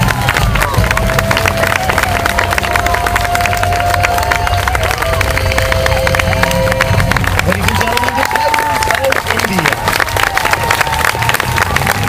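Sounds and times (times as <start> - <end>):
music over a loudspeaker: 0.0 - 9.8
crowd clapping and cheering: 0.0 - 12.0.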